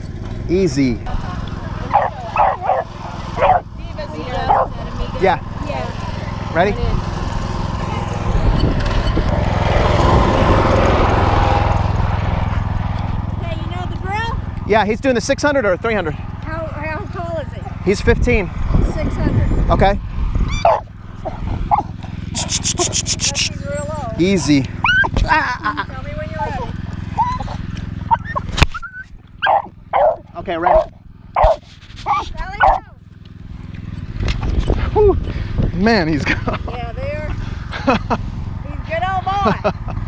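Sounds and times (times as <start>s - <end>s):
dog barking and yelping: 1.8s - 3.7s, 4.4s - 4.8s, 20.5s - 24.2s, 24.8s - 25.2s, 26.4s - 33.0s.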